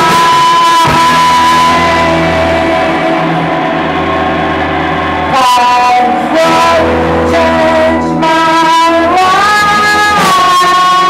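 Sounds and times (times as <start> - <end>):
woman singing into a microphone: 0.0 - 3.6, 5.3 - 11.0
electric guitar: 0.0 - 11.0
rock band playing: 0.0 - 11.0.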